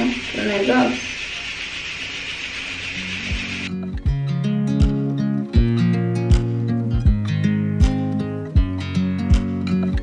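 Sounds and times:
room noise hiss: 0.0s - 3.7s
background music with strummed guitar: 3.2s - 10.0s.

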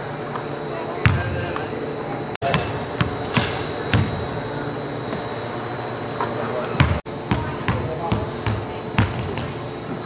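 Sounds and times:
steady high-pitched whine: 0.0s - 10.0s
basketball bouncing on hardwood floor: 2.5s - 4.2s, 6.8s - 9.6s.

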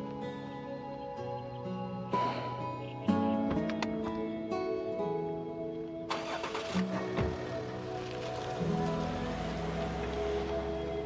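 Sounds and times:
background music: 0.0s - 11.0s
car door shutting: 7.1s - 7.6s.

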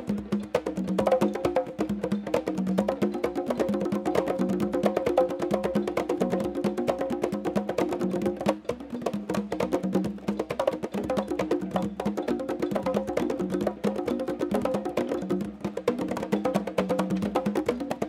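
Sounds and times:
conga drums groove: 0.0s - 18.0s
high conga soloing: 0.0s - 18.0s.

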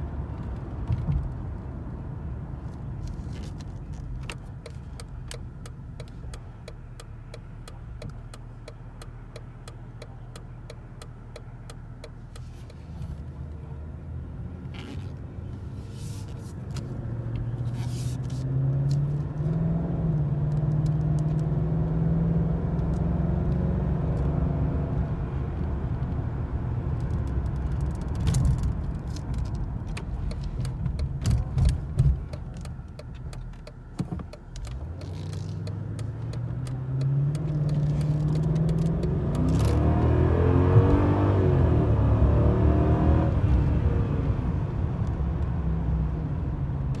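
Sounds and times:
car engine accelerating: 3.0s - 47.0s.

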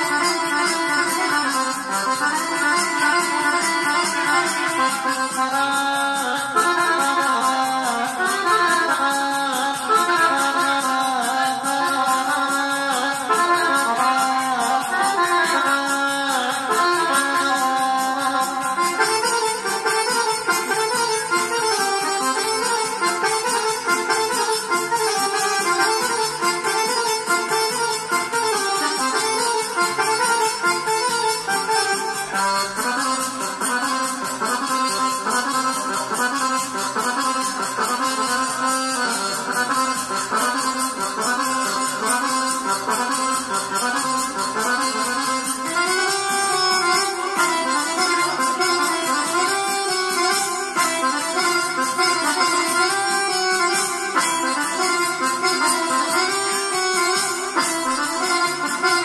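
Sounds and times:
folk dance music on keyboard: 0.0s - 59.0s.

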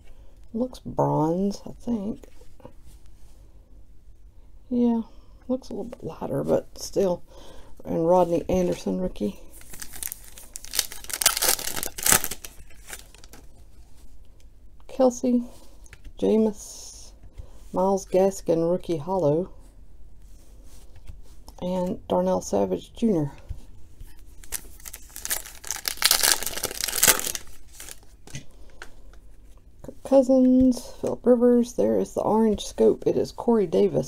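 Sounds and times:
foil wrapper tearing and crinkling: 9.6s - 13.4s, 24.4s - 28.1s.

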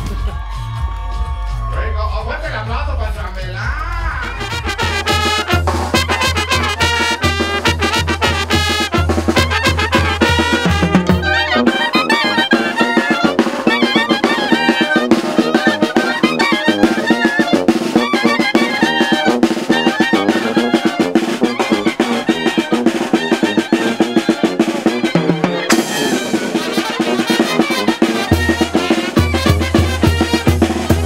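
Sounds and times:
bass drum: 0.0s - 31.0s
clarinets and trumpets melody: 4.2s - 31.0s
fast snare drum: 4.2s - 31.0s.

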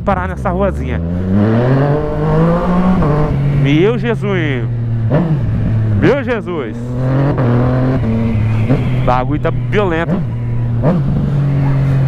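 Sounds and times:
motorcycle engine running: 0.0s - 12.0s
wind rumble: 1.2s - 12.0s.

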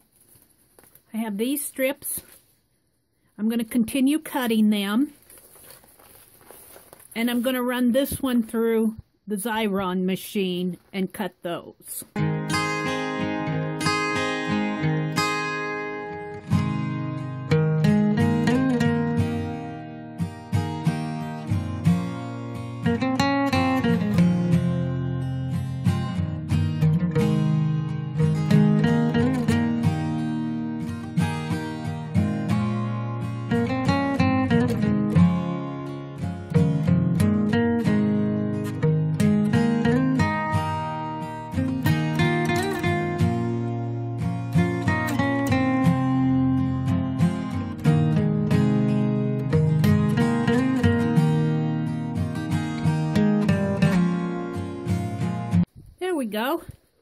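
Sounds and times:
acoustic guitar background music: 12.1s - 56.7s.

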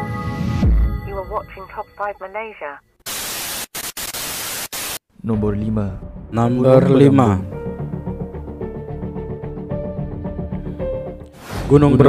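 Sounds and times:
television static hiss: 2.3s - 5.0s.

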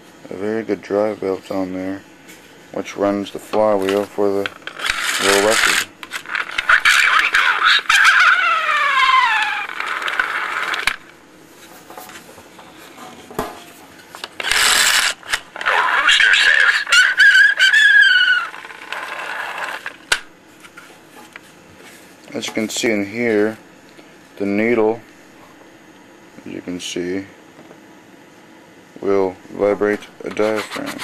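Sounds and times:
recorded animal call: 6.7s - 10.8s, 15.6s - 19.8s.

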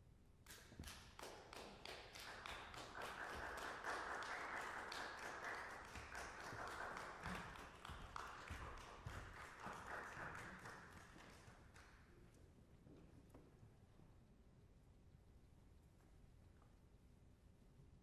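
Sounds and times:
small audience applauding: 0.6s - 12.1s.

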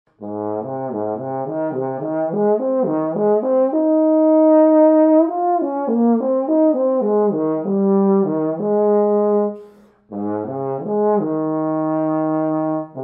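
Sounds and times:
bass trombone arpeggio: 0.2s - 13.0s.

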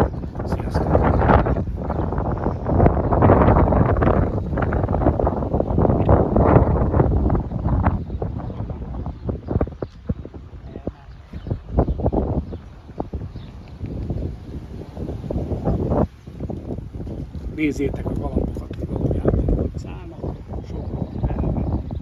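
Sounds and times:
wind buffeting microphone: 0.0s - 22.0s.

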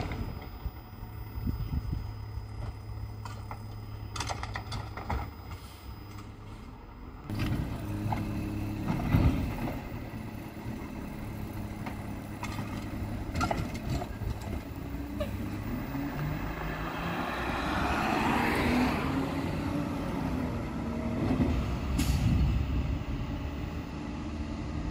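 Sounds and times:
garbage truck diesel engine: 0.0s - 24.9s
hydraulic arm emptying bin: 7.3s - 15.7s.

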